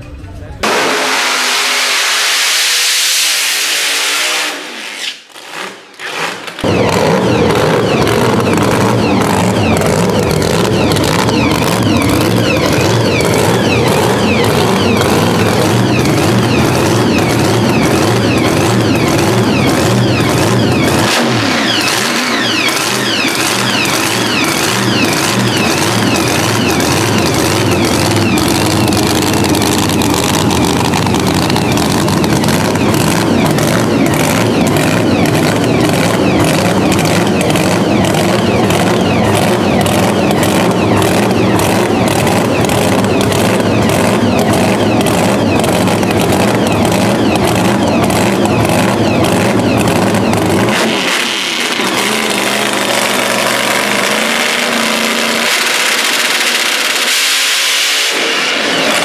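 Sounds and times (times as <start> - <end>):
drag car engine running: 0.0 - 4.7, 5.3 - 59.0
loud rush of noise: 0.0 - 4.8, 6.4 - 59.0.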